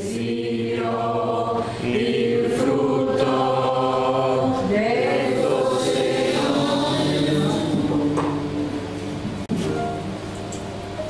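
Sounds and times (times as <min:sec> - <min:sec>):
voices singing a hymn: 0:00.0 - 0:09.4.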